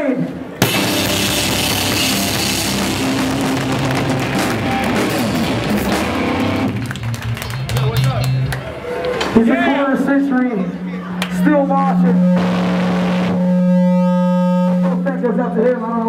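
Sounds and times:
hardcore band playing live: 0.6s - 8.6s
amplifier hum: 11.4s - 15.2s
sustained low note: 11.6s - 15.1s.

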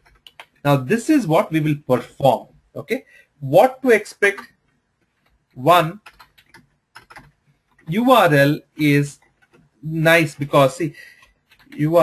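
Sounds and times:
keyboard keys clicking: 0.0s - 0.6s, 5.9s - 8.0s, 11.2s - 12.0s.

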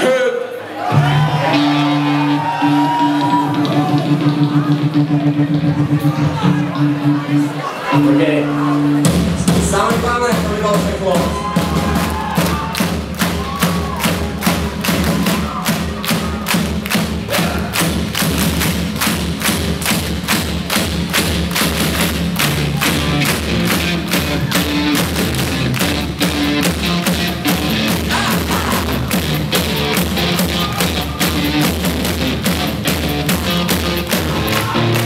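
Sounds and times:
live rock band playing: 0.9s - 35.0s
drums beating steadily: 1.0s - 7.4s, 8.0s - 35.0s.

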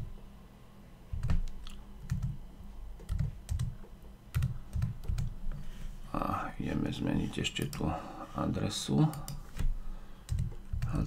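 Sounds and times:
typing on computer keyboard: 1.2s - 2.4s, 3.0s - 5.3s, 10.3s - 11.0s.

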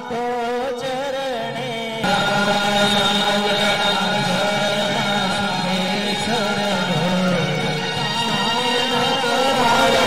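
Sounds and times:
voices chanting long notes: 2.0s - 10.0s.

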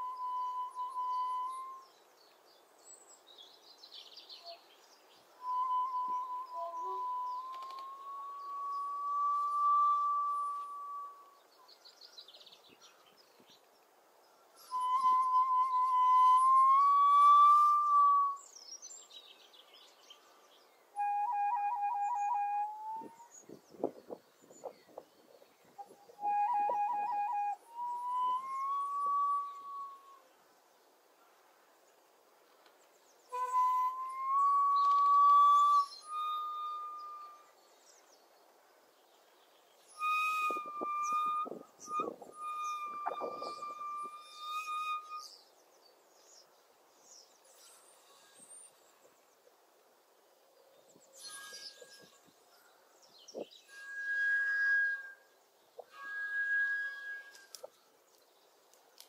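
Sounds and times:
bamboo flute long breathy notes: 5.4s - 11.4s, 14.6s - 18.5s, 20.2s - 23.5s, 25.8s - 30.3s, 33.3s - 37.6s, 39.9s - 45.4s, 53.7s - 57.7s.

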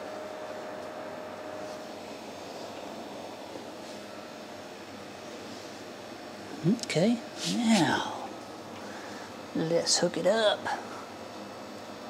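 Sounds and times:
room hiss and hum: 0.0s - 12.0s
man speaking: 6.6s - 8.3s.

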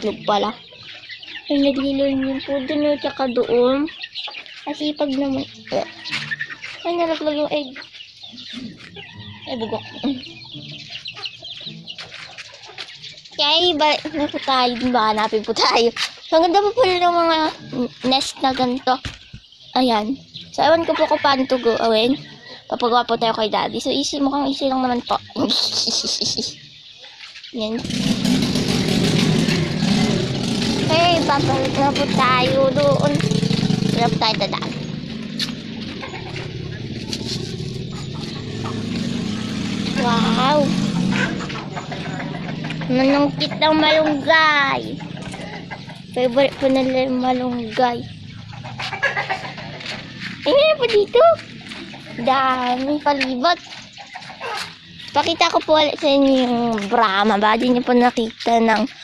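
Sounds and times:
vehicle engine humming: 0.0s - 25.2s, 27.6s - 59.0s
chickens clucking: 0.0s - 59.0s.

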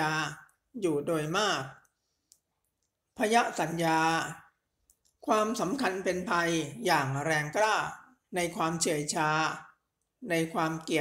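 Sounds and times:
person reciting scripture: 0.0s - 1.9s, 3.2s - 4.6s, 5.2s - 11.0s.

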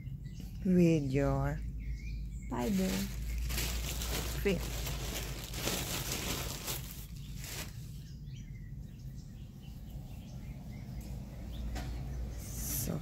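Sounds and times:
soft handling rustling: 2.6s - 7.9s.

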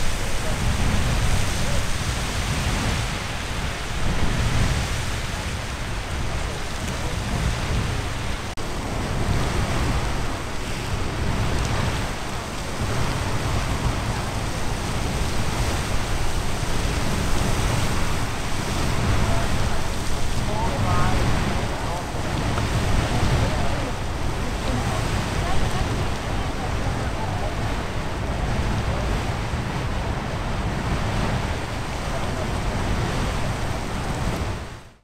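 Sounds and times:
geyser water and steam rushing: 0.0s - 35.0s.

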